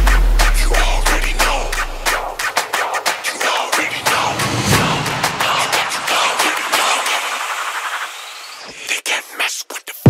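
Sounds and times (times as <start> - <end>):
noisy electronic wash: 0.0 - 8.7
rapid stuttering cuts: 0.0 - 9.3
short rising sweep: 3.7 - 8.7.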